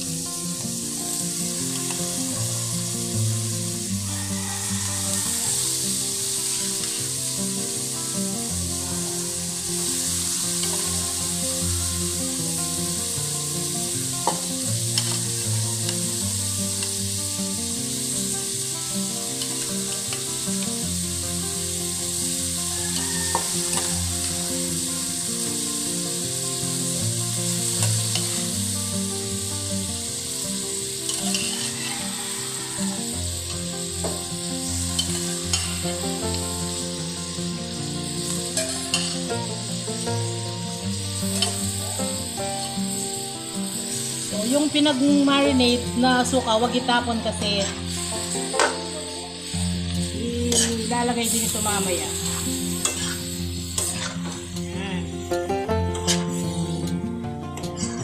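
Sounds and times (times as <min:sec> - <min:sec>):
meat sizzling in a wok: 0:00.0 - 0:57.1
spatula scraping pan: 0:31.1 - 0:32.1, 0:35.0 - 0:36.0, 0:50.5 - 0:54.4, 0:56.0 - 0:56.6.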